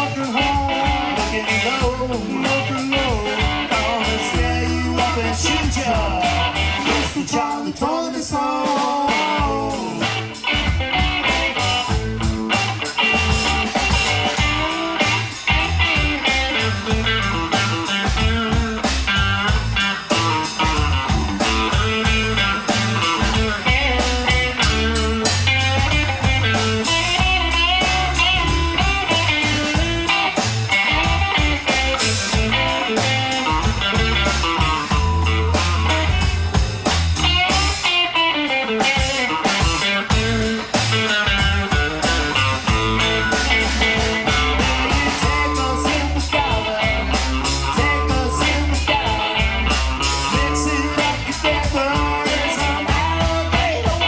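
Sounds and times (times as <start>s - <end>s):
electric bass: 0.0s - 54.0s
electric guitar lead: 0.0s - 54.0s
steady drum beat: 0.0s - 54.0s.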